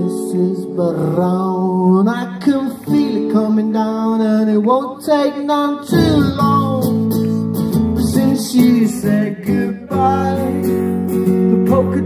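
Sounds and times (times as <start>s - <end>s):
acoustic guitar strumming: 0.0s - 12.0s
person singing: 0.0s - 12.0s.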